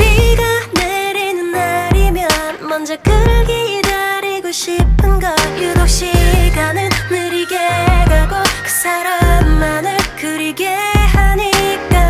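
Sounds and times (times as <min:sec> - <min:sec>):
deep kick drum beat: 0:00.0 - 0:00.9, 0:01.9 - 0:02.4, 0:03.1 - 0:03.7, 0:04.8 - 0:07.2, 0:07.9 - 0:08.6, 0:09.2 - 0:10.1, 0:11.0 - 0:12.0
woman singing: 0:00.0 - 0:12.0.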